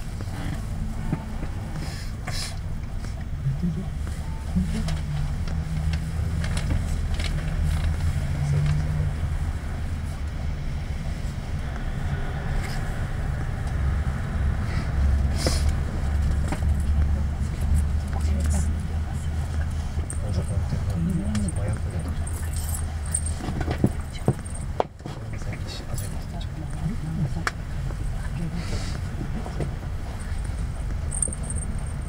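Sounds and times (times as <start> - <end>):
bus diesel engine idling: 0.0 - 32.0.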